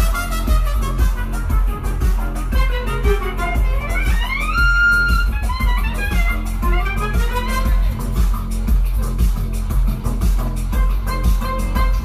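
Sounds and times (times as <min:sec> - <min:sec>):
clarinet: 0:00.0 - 0:08.0
trumpet: 0:00.0 - 0:08.0, 0:10.8 - 0:12.0
violin: 0:00.0 - 0:08.5, 0:10.7 - 0:12.0
heavy electronic bass beat: 0:00.0 - 0:12.0.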